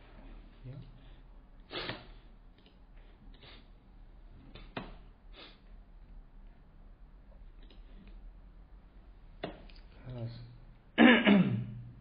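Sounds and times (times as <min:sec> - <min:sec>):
person clearing throat: 0:11.0 - 0:11.9.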